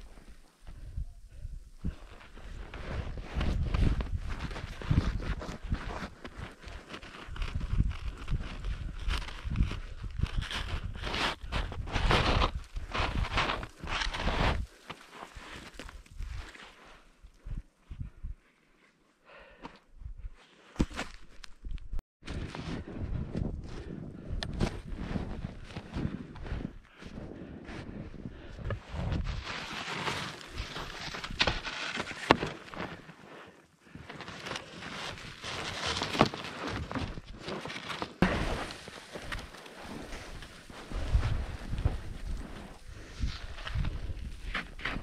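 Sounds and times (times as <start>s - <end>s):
skis crunching and scuffing snow: 2.0s - 17.1s, 28.6s - 45.0s.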